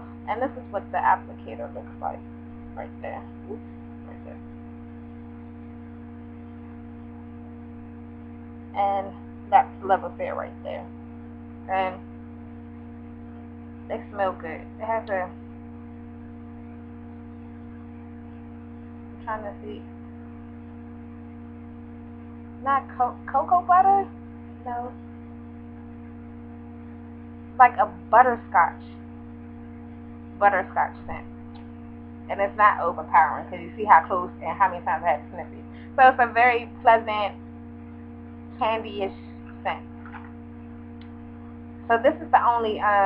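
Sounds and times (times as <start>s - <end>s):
steady multi-tone hum: 0.0s - 43.0s.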